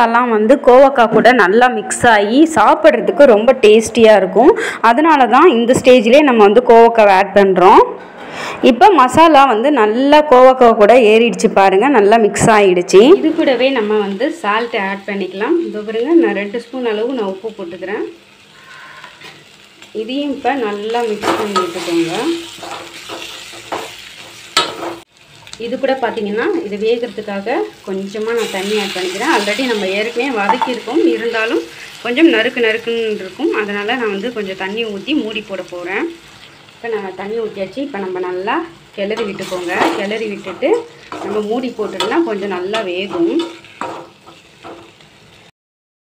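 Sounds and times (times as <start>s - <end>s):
faint sizzle of frying: 12.7s - 45.5s
spatula stirring: 39.2s - 45.0s.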